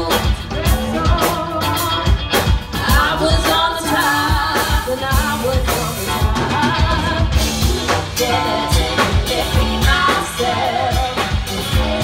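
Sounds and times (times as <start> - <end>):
funk band playing: 0.0 - 12.0
woman singing: 0.0 - 12.0.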